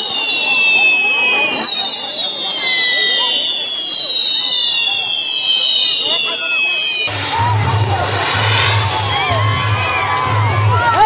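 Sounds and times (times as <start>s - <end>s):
high falling firework whistles: 0.0s - 10.6s
firework fountains hissing: 0.1s - 10.8s.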